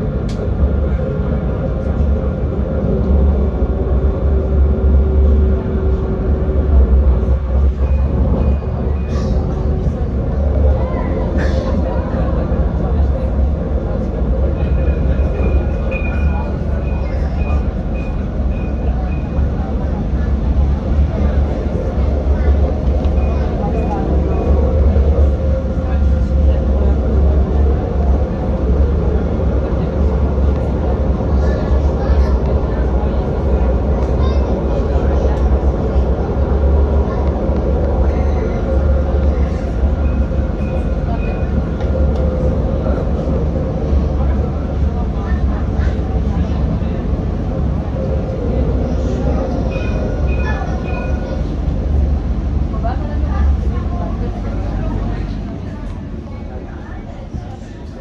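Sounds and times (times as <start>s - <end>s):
tram rumbling on rails: 0.0s - 58.0s.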